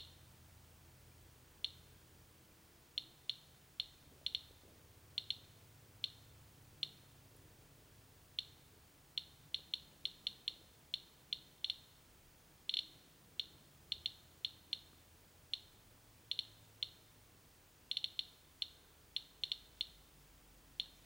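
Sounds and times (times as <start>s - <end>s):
geiger counter clicking: 3.0s - 7.1s, 9.2s - 11.9s, 12.7s - 17.0s, 17.9s - 20.1s, 20.8s - 21.0s.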